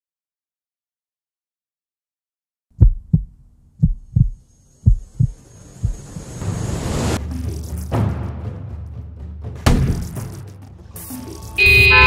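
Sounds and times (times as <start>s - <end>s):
heartbeat thumps: 2.8s - 6.3s.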